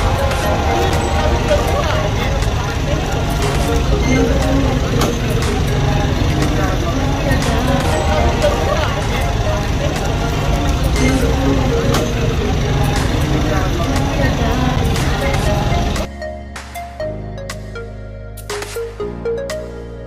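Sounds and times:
indistinct chatter: 0.0s - 16.1s
steady low rumble: 0.0s - 16.1s.

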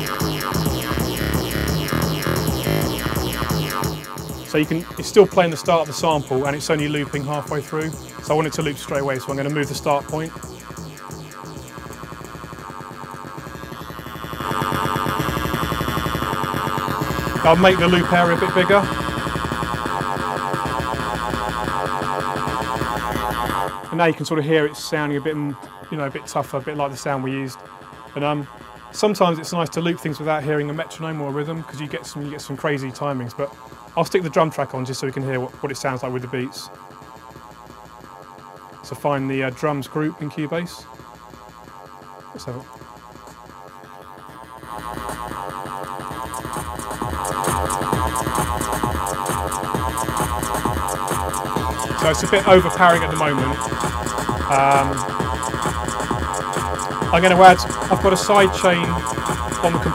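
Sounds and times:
distorted bass loop stuttering: 0.0s - 59.9s.

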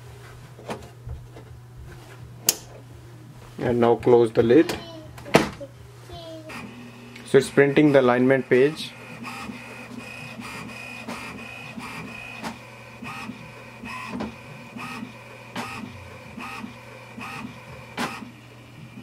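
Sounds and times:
printer carriage whine: 6.4s - 19.0s.

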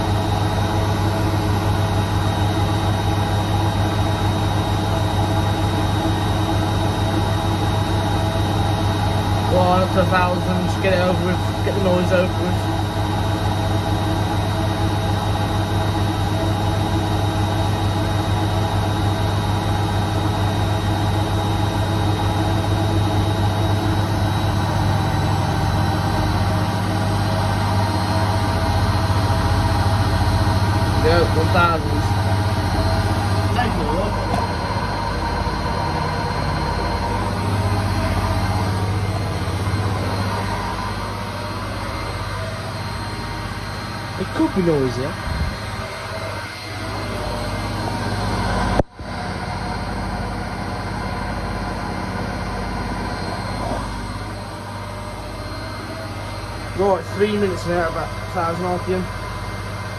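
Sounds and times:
washing machine spinning: 0.0s - 59.9s.

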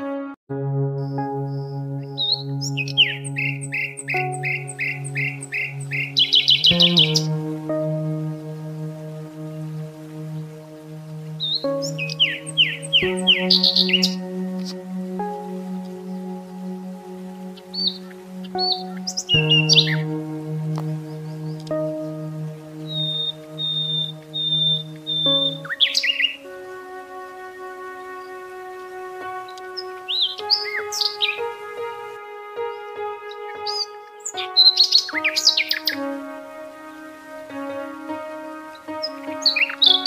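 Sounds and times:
ambient music sustained chords: 0.0s - 40.0s
birds chirping: 1.0s - 40.0s
bird whistled notes: 11.4s - 14.2s, 22.9s - 26.4s, 33.6s - 36.0s.

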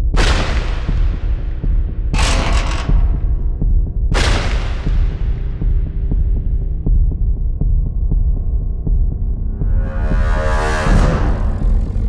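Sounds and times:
deep rumbling drone: 0.9s - 12.0s.

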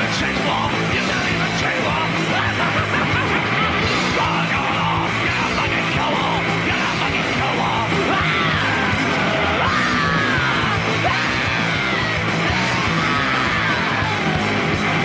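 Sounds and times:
heavy rock band playing live: 0.0s - 15.0s
yelled vocal: 0.0s - 15.0s.

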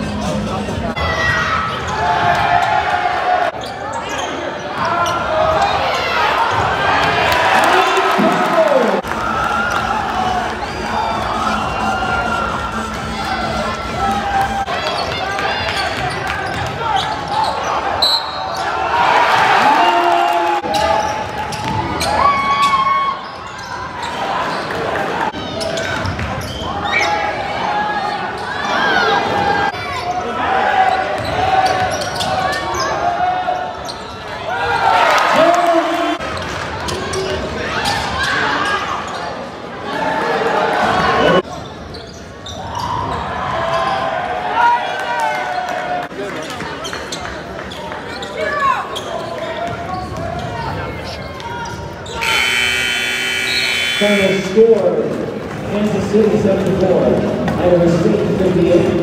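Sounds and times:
spectators talking: 0.0s - 22.2s, 46.0s - 59.0s.

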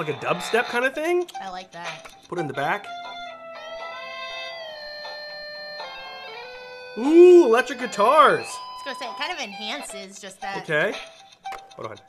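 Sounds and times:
toy playing electric guitar music: 0.0s - 12.0s.

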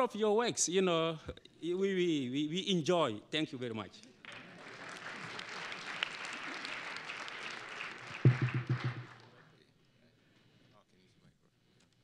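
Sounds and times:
audience applauding: 4.3s - 9.3s.

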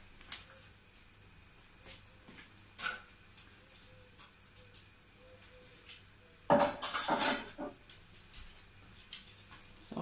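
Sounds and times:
dishes clattering: 6.5s - 7.8s.

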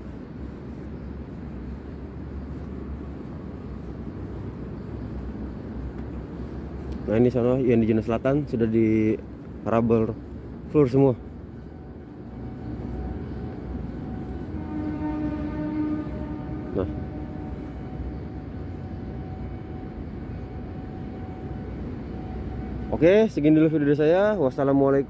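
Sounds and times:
low machine hum: 0.0s - 24.4s
faint high whine: 0.0s - 25.0s.

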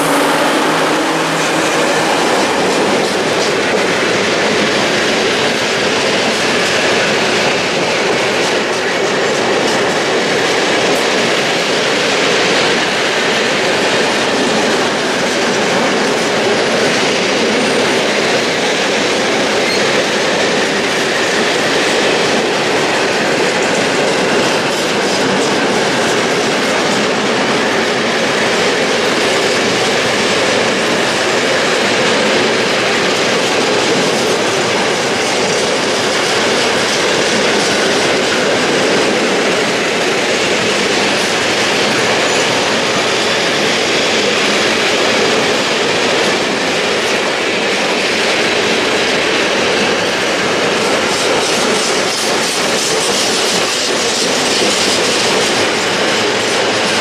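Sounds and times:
steel train wheels on rails: 0.0s - 57.0s.

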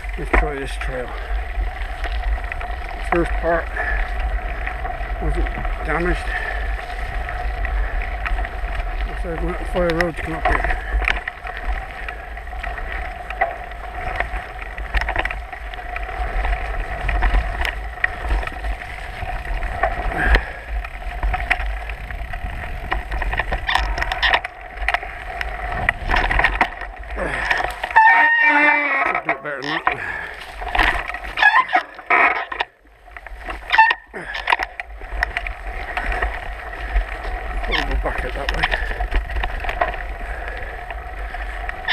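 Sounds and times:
bike rattling and knocking: 0.0s - 41.9s
tyre noise: 0.0s - 41.9s
wind rumble on microphone: 0.0s - 41.9s
short wavering squeals: 27.9s - 29.3s, 31.4s - 32.5s.

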